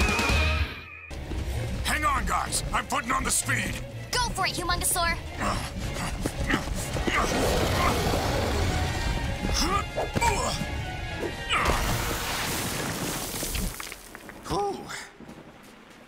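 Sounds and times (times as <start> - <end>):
dramatic music: 0.0 - 12.8
wordless cries and growls: 5.3 - 11.9
rain: 11.7 - 16.0.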